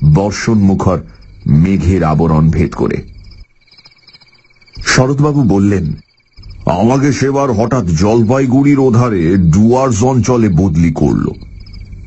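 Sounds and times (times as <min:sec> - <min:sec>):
man narrating: 0:00.0 - 0:03.1, 0:04.7 - 0:06.0, 0:06.6 - 0:11.5
fast pulsing chirr: 0:00.0 - 0:12.0
insects and frogs chirring: 0:00.0 - 0:12.0
thin steady high tone: 0:00.0 - 0:12.0.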